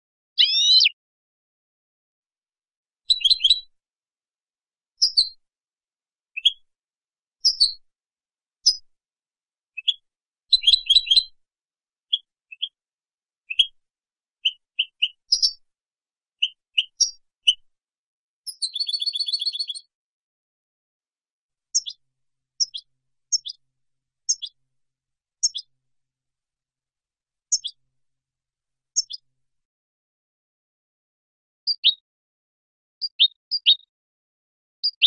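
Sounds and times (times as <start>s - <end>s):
goldfinch singing: 0.4s - 1.0s, 3.1s - 3.7s, 13.5s - 13.7s, 18.5s - 19.9s, 27.5s - 27.8s, 29.0s - 29.2s.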